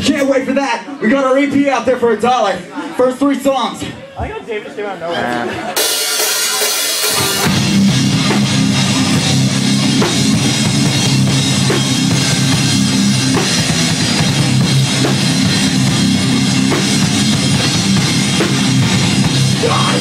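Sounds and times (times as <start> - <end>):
heavy distorted guitars: 5.4 - 20.0
drum kit: 5.7 - 20.0.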